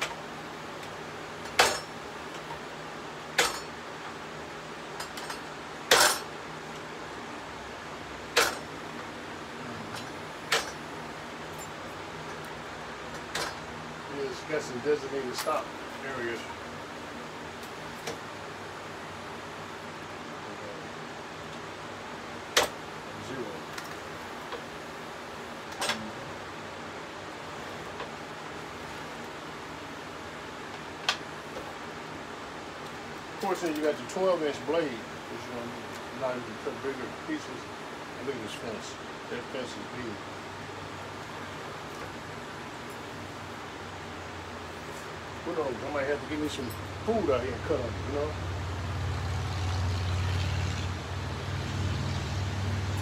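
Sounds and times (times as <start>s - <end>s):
steady hiss: 0.0s - 48.5s.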